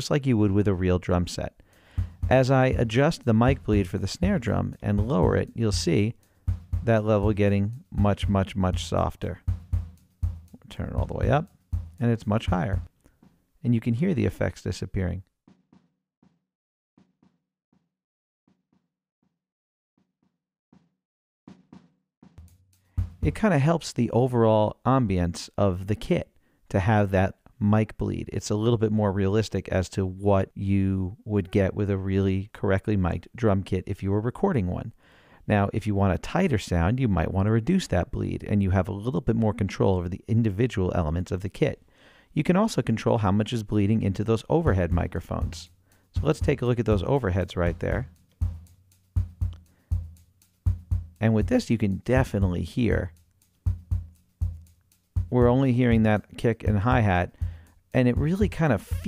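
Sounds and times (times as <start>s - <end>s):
hi-hat ticks: 1.4s - 12.9s, 22.4s - 23.4s, 44.7s - 59.0s
faint kick drum hits: 2.0s - 2.9s, 6.5s - 7.4s, 8.2s - 12.9s, 22.4s - 23.4s, 48.4s - 51.2s, 53.7s - 54.6s.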